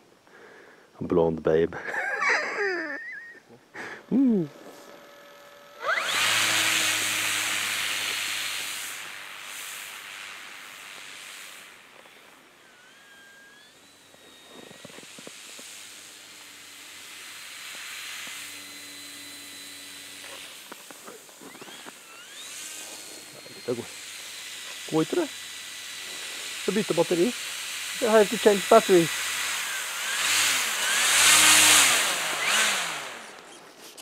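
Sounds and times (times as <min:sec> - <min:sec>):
electric motor whine: 0:01.8 - 0:34.0
propeller rushing hiss: 0:01.9 - 0:33.5.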